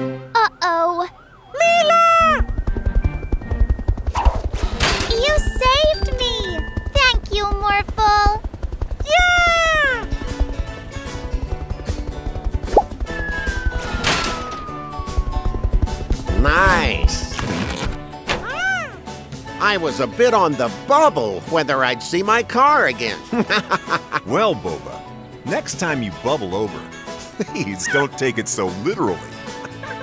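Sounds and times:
upbeat background music: 0:09.4 - 0:30.0
long falling whistle: 0:13.1 - 0:15.7.

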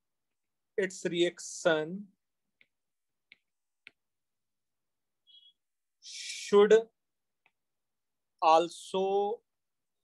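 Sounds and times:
stylus tapping on pen tablet: 0:02.5 - 0:04.1.

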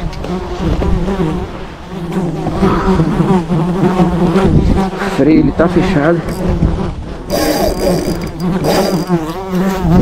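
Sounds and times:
beetle wing buzz: 0:00.2 - 0:10.0.

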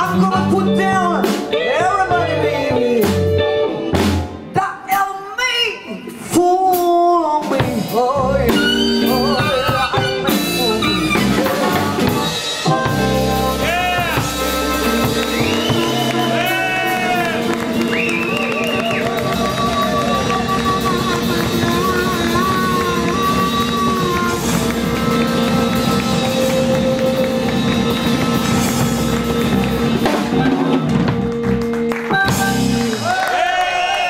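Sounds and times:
electric bass guitar: 0:00.0 - 0:05.0, 0:06.1 - 0:33.4
drum kit: 0:00.0 - 0:05.4, 0:06.0 - 0:34.0
harmonica lead: 0:08.5 - 0:33.2.

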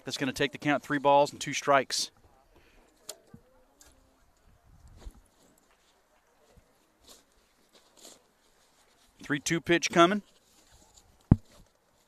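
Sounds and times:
faint distant voices: 0:02.1 - 0:09.2.

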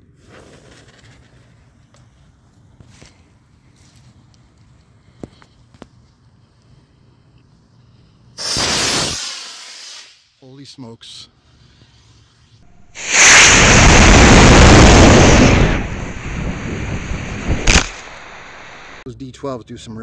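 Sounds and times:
fuse burning with ticks: 0:00.2 - 0:08.7
rocket motor roaring: 0:12.6 - 0:19.0.

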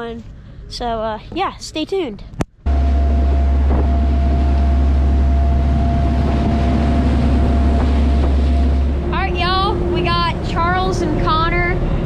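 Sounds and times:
boat engines droning: 0:02.6 - 0:12.0
thin steady whine: 0:02.6 - 0:12.0
water rushing past hull: 0:02.7 - 0:12.0.

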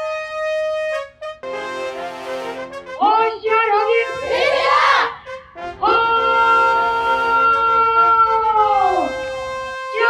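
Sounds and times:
drill instructor shouting: 0:03.0 - 0:05.2, 0:05.8 - 0:09.2.

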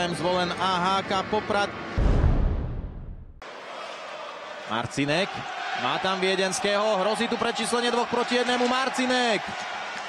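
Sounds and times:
deep boom with falling whoosh: 0:02.0 - 0:03.4.

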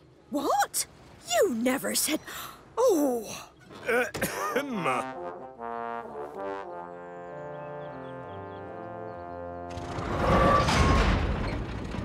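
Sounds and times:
orchestral music with sustained chords: 0:04.5 - 0:09.8
railway trucks crashing: 0:09.7 - 0:12.0.

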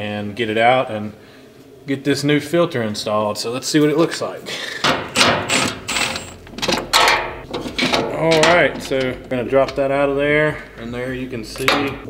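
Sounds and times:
ratchet clicking on bolts: 0:05.2 - 0:09.8.

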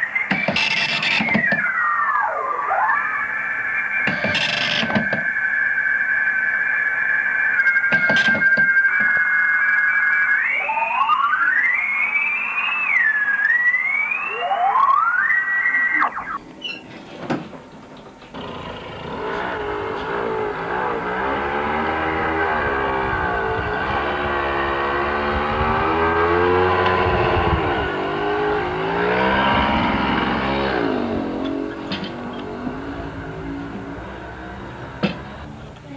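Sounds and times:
radioteletype tones: 0:00.0 - 0:16.9, 0:18.2 - 0:35.9
sliding radio whistles: 0:00.0 - 0:16.9
dense warbling tone: 0:01.6 - 0:08.0, 0:09.3 - 0:16.6, 0:18.4 - 0:35.7.

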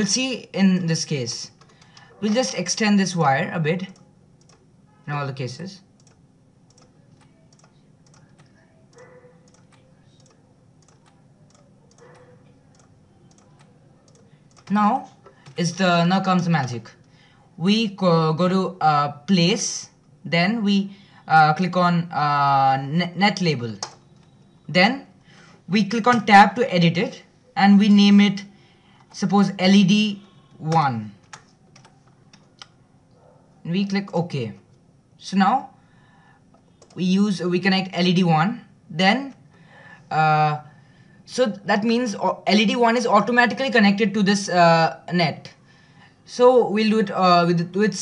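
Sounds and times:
low room hum: 0:00.0 - 0:48.0
mouse and keyboard clicks: 0:06.0 - 0:14.7.

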